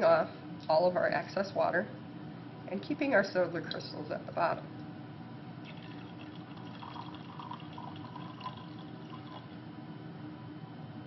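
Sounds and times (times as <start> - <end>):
low room hum: 0.0 - 11.0
liquid trickling into beaker: 5.6 - 9.6.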